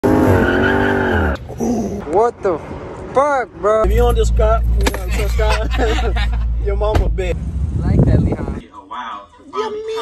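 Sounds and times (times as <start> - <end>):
car tires squealing: 0.0 - 1.6.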